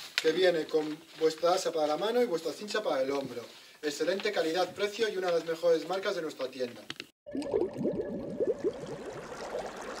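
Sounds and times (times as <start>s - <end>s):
underwater bubbles blipping: 7.3s - 10.0s.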